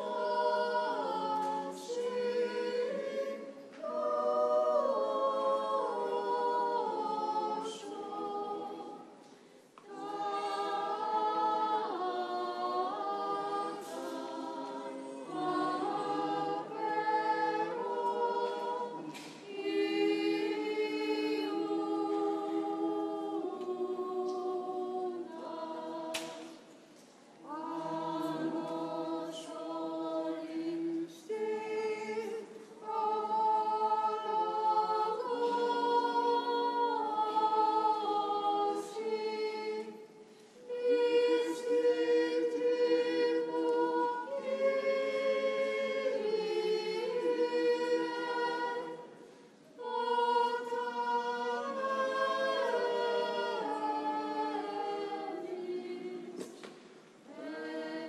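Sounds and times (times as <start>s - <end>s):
church choir singing a cappella: 0.0s - 58.0s.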